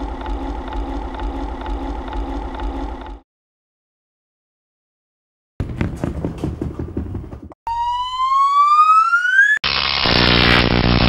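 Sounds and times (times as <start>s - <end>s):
rising synthetic tone: 7.7s - 10.3s.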